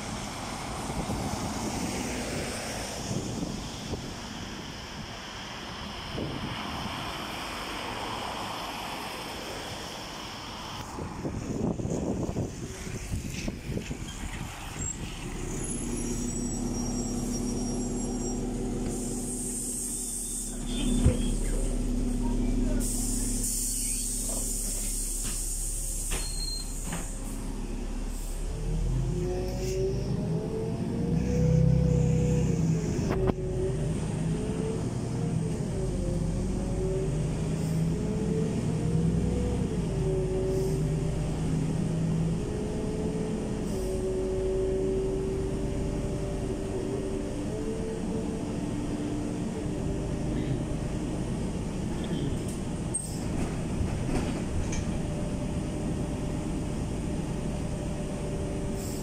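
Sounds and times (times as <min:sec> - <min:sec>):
bus engine: 0:00.0 - 0:59.0
drivetrain whine: 0:10.8 - 0:59.0
compressed air hissing: 0:22.8 - 0:27.2.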